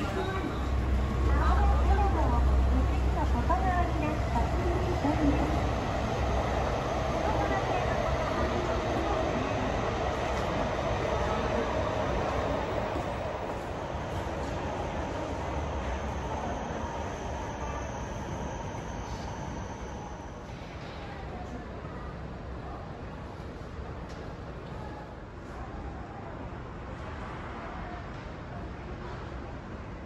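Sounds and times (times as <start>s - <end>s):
train rumbling: 0.0s - 25.6s.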